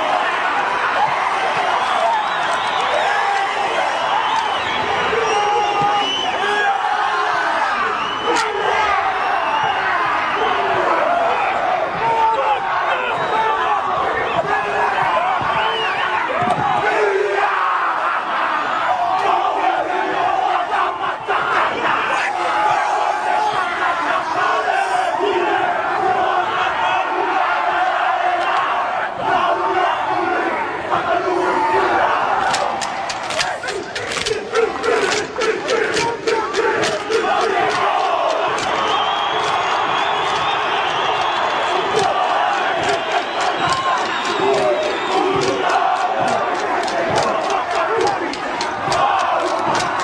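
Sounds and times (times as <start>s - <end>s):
group of men shouting: 0.0s - 50.0s
stadium crowd noise: 0.0s - 50.0s.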